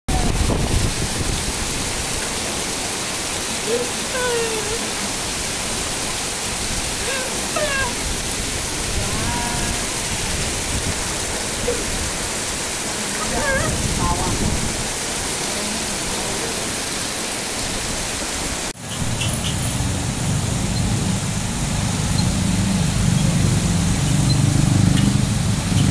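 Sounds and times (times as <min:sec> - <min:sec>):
heavy rain pouring: 0:00.1 - 0:25.9
runoff streaming off roof: 0:00.1 - 0:25.9.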